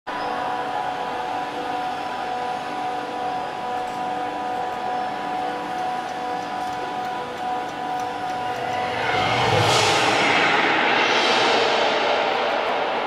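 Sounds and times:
steady machinery hum: 0.1s - 13.0s
room noise: 5.8s - 13.0s.

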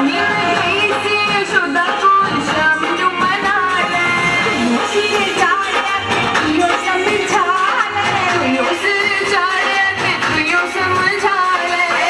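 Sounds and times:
instrumental accompaniment: 0.0s - 12.0s
person singing devotional song: 0.0s - 12.0s.

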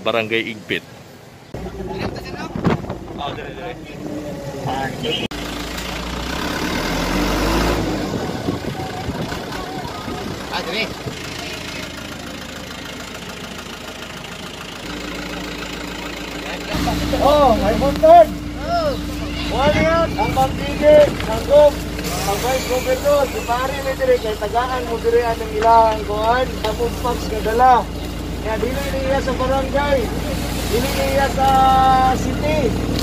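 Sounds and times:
vehicle engine running: 1.0s - 33.0s
indistinct voices: 1.5s - 33.0s.

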